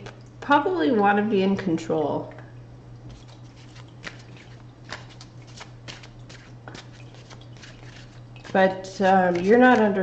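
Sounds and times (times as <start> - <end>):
cards being shuffled: 3.5 - 9.9.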